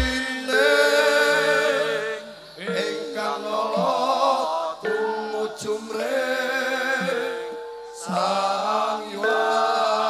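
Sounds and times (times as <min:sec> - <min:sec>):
voices chanting together: 0:00.0 - 0:10.0.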